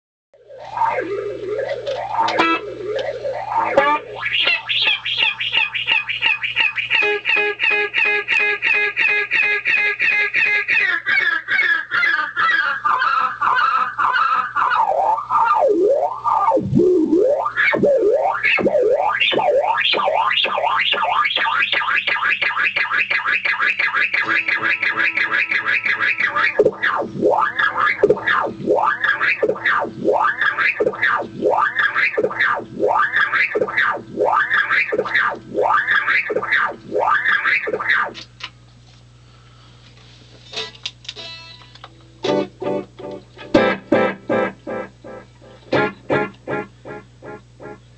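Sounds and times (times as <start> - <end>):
swooping pitch sweeps: 0.4 - 9.6, 14.6 - 38.2
self-oscillating delay pedal echo: 0.4 - 10.5, 14.7 - 38.1
low hum and hiss: 0.4 - 11.5, 12.6 - 22.7, 23.5 - 47.9.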